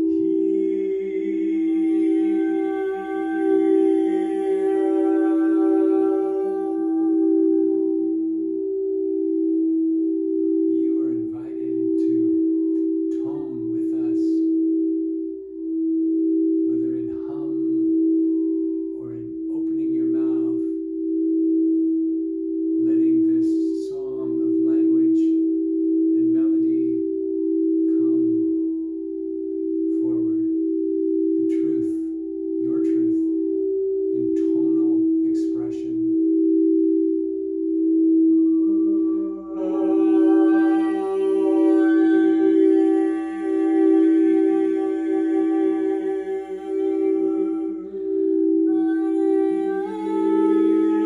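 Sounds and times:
soft low vocal sounds: 0.0 - 21.8, 22.6 - 51.0
crystal singing bowls ringing: 0.0 - 51.0.

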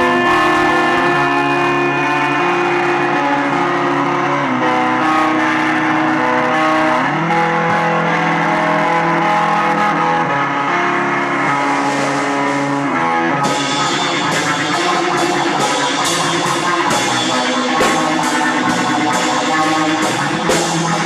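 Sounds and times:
electric guitar chords ringing: 0.0 - 21.0
live rock band playing: 0.0 - 21.0.

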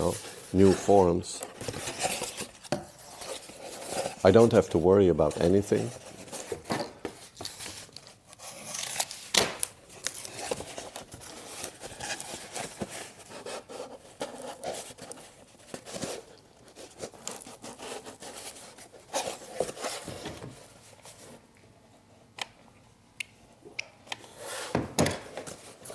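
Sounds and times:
cardboard rustling and crinkling: 0.0 - 21.4.

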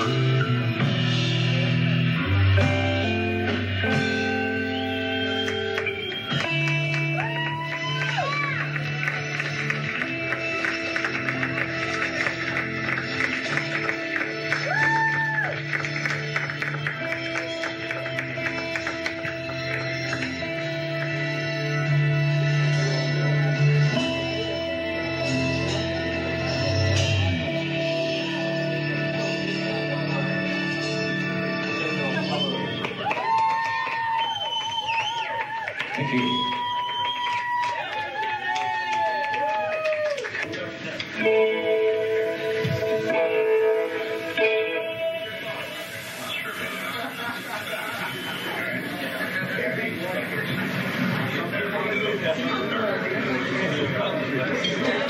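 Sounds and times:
drums and cymbal hits: 0.0 - 6.7
held melody notes: 0.0 - 7.4, 41.2 - 47.1
sliding guitar pitch: 0.0 - 32.8, 41.1 - 48.7
live rock band playing: 0.0 - 33.1, 40.6 - 49.7.

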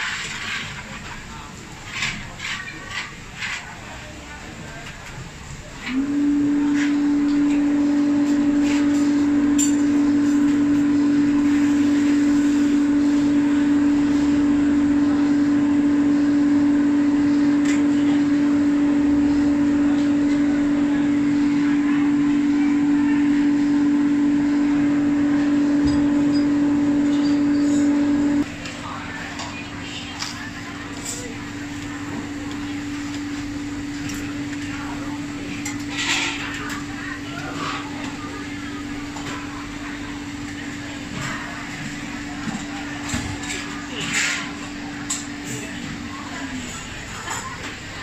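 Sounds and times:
electric air blower humming: 5.8 - 28.5.

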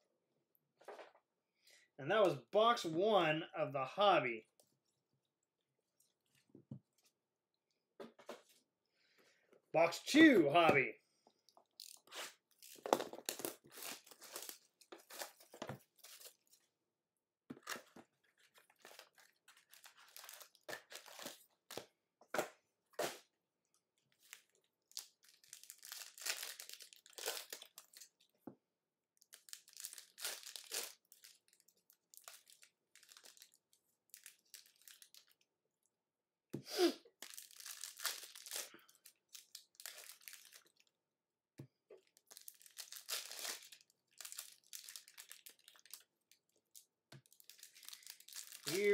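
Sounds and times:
plastic and foil packs crinkling: 11.6 - 16.7, 17.5 - 21.9, 24.0 - 28.4, 29.2 - 35.4, 37.1 - 40.9, 42.0 - 48.9.

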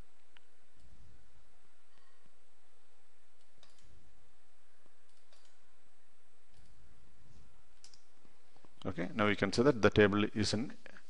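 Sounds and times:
steady background hiss: 0.0 - 11.0
computer mouse and keyboard clicks: 3.4 - 4.0, 5.0 - 5.6, 6.5 - 6.8, 7.8 - 8.1.

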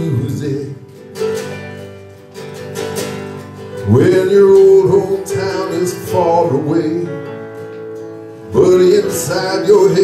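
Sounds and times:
acoustic guitar strumming: 0.0 - 10.0
person singing: 3.8 - 7.4, 8.5 - 10.0.

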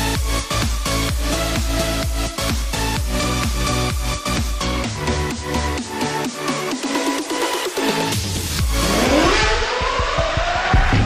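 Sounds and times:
electronic music with beat: 0.0 - 11.0
car engine revving up: 8.5 - 11.0.

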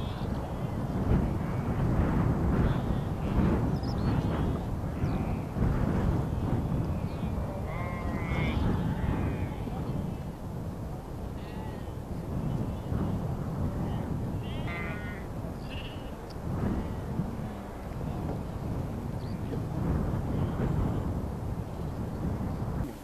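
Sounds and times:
low rumbling noise: 0.0 - 23.0
sheep bleating: 6.4 - 10.3, 11.3 - 18.3.

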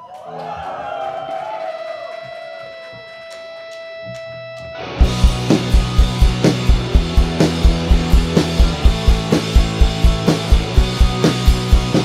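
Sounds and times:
electric guitar sustained note: 2.2 - 10.1
rock band playing: 2.2 - 12.0
drums keeping a steady beat: 5.0 - 12.0.

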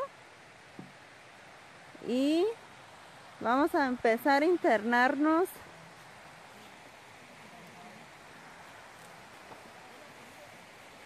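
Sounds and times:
forest ambience hiss: 0.0 - 11.0.

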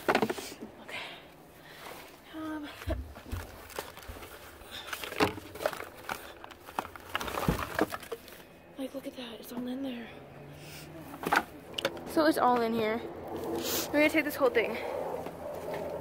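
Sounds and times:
plastic wrapping rustling and crinkling: 2.8 - 8.5.

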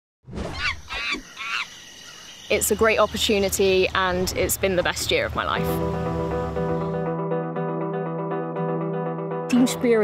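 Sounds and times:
monkey calls: 0.5 - 2.3.

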